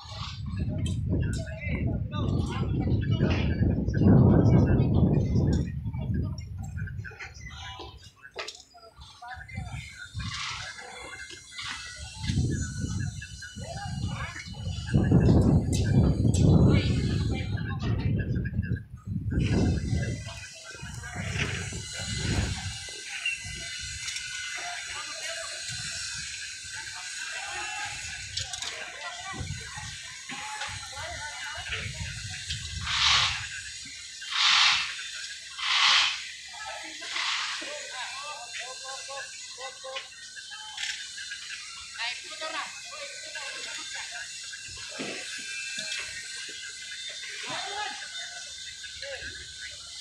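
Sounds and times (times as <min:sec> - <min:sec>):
voices: 0:00.0 - 0:50.0.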